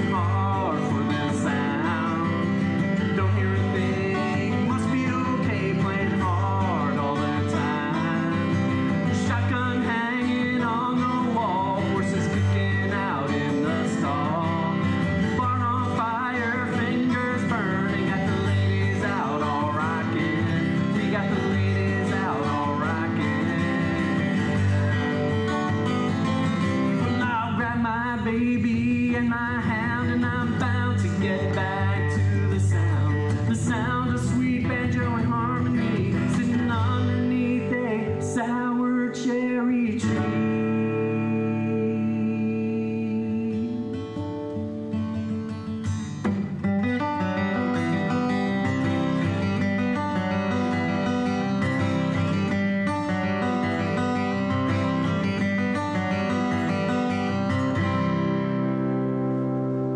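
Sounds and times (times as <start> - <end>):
man singing: 0.0 - 46.2
acoustic guitar strumming: 0.0 - 59.9.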